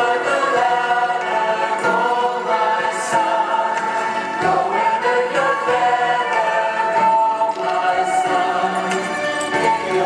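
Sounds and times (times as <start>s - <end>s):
choir singing held notes: 0.0s - 10.0s.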